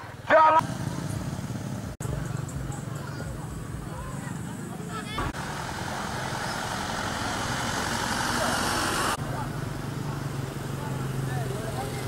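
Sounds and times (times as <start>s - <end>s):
broad rushing noise: 5.0s - 9.3s.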